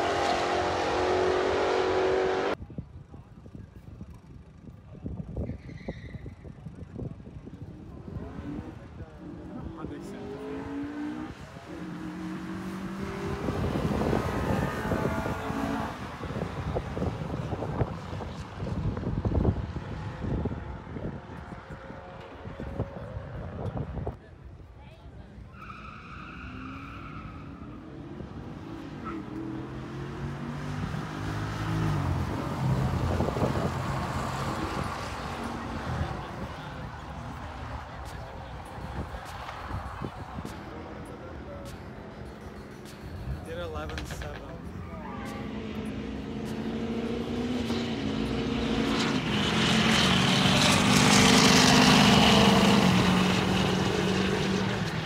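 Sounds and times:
drag cars accelerating: 0:00.0 - 0:02.6, 0:07.5 - 0:24.2, 0:25.5 - 0:55.0.

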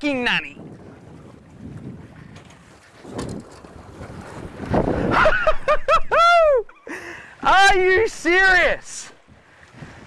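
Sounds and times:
wind buffeting microphone: 0:00.0 - 0:06.6, 0:07.8 - 0:10.0
water washing against boat: 0:00.0 - 0:10.0.

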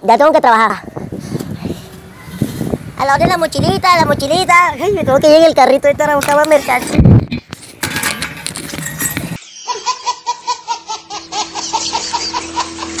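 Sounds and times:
baby giggling: 0:09.5 - 0:13.0.

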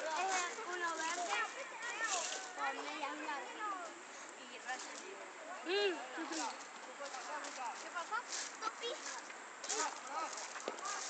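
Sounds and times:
children shouting: 0:00.0 - 0:03.8
steady outdoor hiss: 0:00.0 - 0:11.0.

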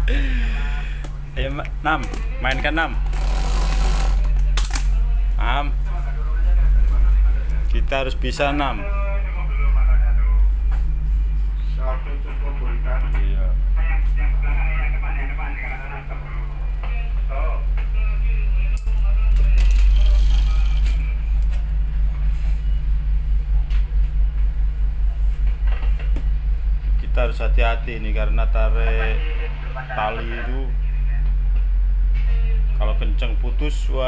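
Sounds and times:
indistinct voices: 0:00.0 - 0:21.6, 0:27.0 - 0:31.4
diesel engines droning: 0:04.3 - 0:34.0.

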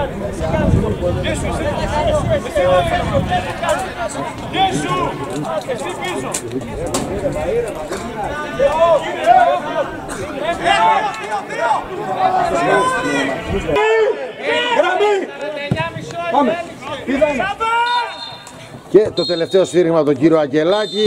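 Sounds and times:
men talking and shouting: 0:00.0 - 0:21.0.

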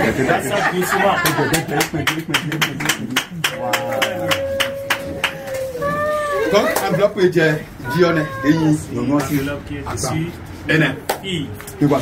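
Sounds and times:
people talking and calling out: 0:03.3 - 0:12.0.

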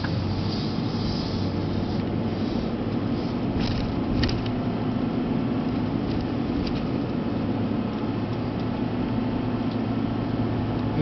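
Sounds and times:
engine hum inside vehicle: 0:00.0 - 0:11.0
road noise: 0:00.0 - 0:11.0.

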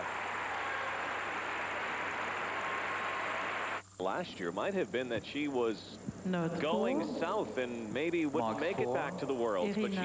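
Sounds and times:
crowd applauding: 0:00.0 - 0:03.8.

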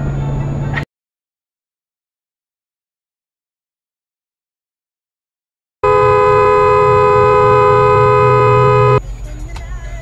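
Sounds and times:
car horn blast: 0:05.8 - 0:09.0.

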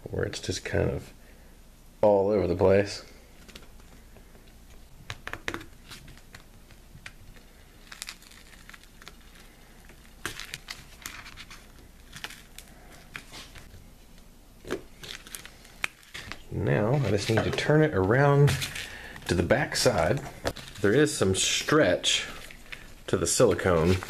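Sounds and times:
silicone rubber being peeled: 0:04.8 - 0:13.7.

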